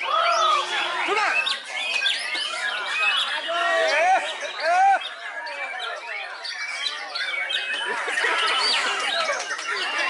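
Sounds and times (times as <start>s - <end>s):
birds whistling and chirping: 0.0s - 10.0s.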